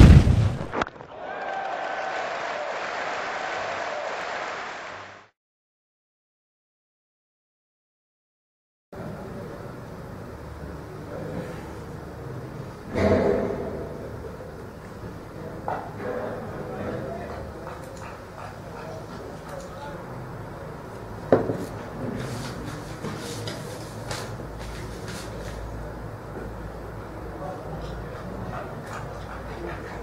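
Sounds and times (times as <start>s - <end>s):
loud burst: 0.0s - 1.0s.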